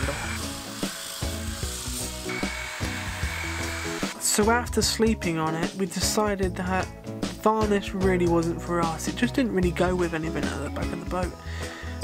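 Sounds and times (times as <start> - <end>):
electric sander whining: 0.0 - 4.2
background music: 0.0 - 12.0.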